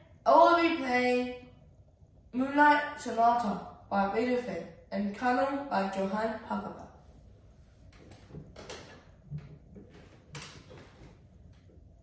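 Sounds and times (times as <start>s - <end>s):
faint clicks and soft knocks: 7.8s - 12.0s.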